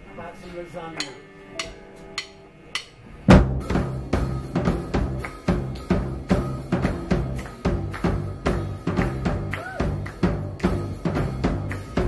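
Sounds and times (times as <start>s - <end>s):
drumstick clicks: 1.0s - 3.0s
rock band playing: 1.0s - 12.0s.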